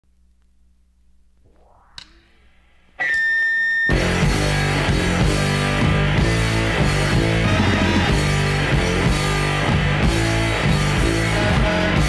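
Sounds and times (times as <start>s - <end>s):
high-pitched tone: 1.4s - 4.4s
sharp click: 1.9s - 2.3s
rock band playing: 3.0s - 12.0s.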